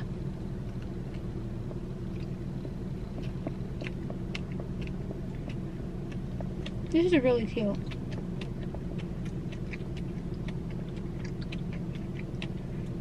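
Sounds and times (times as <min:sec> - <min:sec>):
person chewing: 0:00.0 - 0:07.0, 0:07.7 - 0:13.0
low car hum: 0:00.0 - 0:13.0.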